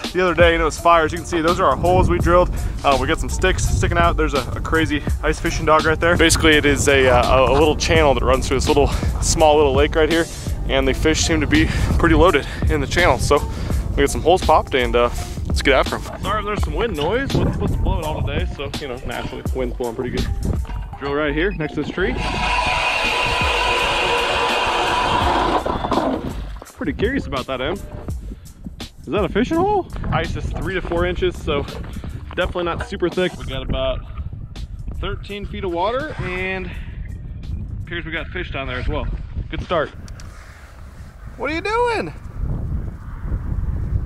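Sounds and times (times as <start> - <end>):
wind buffeting microphone: 0.0 - 44.0
electric motor whine: 22.1 - 26.2
auger bit grinding through ice: 22.1 - 26.4.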